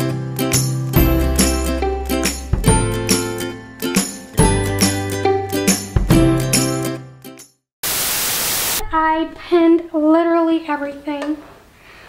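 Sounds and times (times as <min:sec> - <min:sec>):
white-noise static burst: 0:07.8 - 0:08.9
woman speaking: 0:08.8 - 0:11.4.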